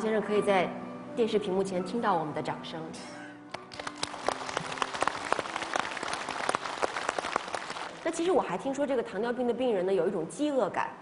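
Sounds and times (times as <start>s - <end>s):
soft background music: 0.0s - 11.0s
audience applause: 3.7s - 8.0s.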